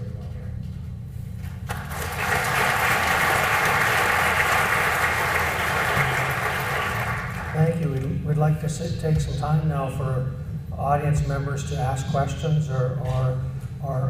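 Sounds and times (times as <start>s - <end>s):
audience applauding: 1.7s - 7.8s.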